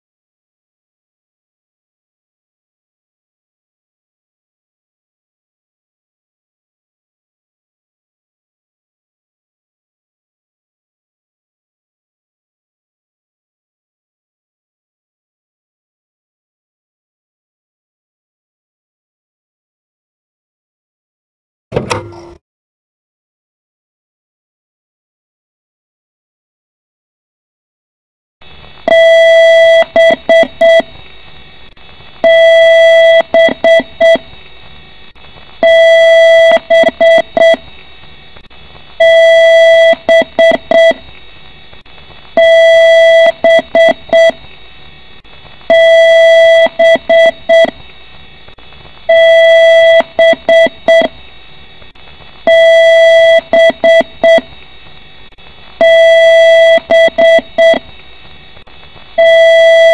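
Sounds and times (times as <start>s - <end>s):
computer speaker beeps: 28.9s - 30.9s, 32.2s - 34.3s, 35.6s - 37.6s, 39.0s - 41.0s, 52.5s - 54.5s, 55.8s - 57.9s.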